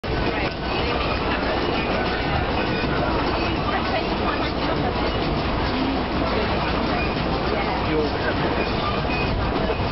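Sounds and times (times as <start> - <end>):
passenger chatter: 0.0 - 9.9
train carriage running noise: 0.0 - 9.9.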